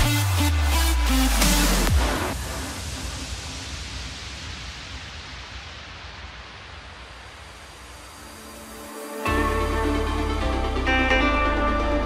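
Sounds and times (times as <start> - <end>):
white-noise sweep: 0.0 - 11.0.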